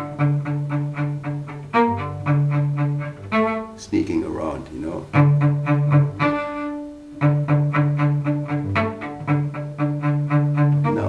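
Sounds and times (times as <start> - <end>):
cello playing short low notes: 0.0 - 11.0.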